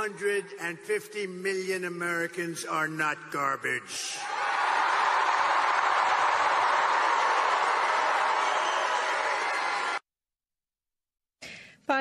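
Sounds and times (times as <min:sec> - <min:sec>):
crowd cheering and applauding: 0:04.2 - 0:10.1.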